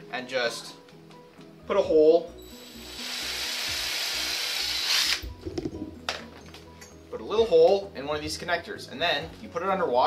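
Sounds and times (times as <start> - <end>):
power drill boring into plastic: 2.6 - 5.3.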